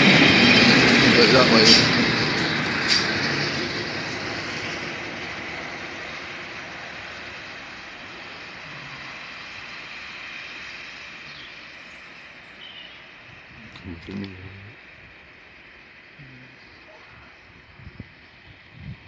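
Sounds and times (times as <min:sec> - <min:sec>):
diesel train moving away: 0:00.0 - 0:19.0.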